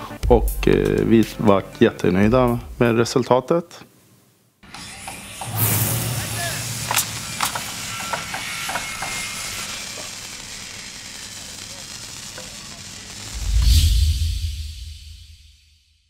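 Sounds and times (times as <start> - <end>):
hiss: 4.7 - 15.7
whooshing rush of noise: 13.3 - 15.8.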